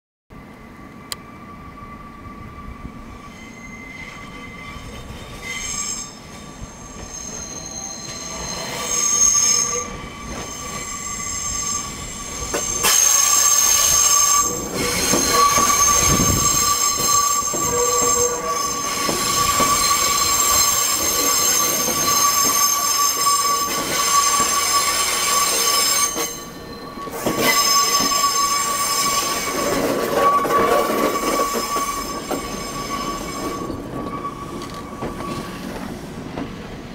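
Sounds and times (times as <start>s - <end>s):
train rumble: 0.4s - 36.9s
train wheels squealing on track: 0.4s - 36.9s.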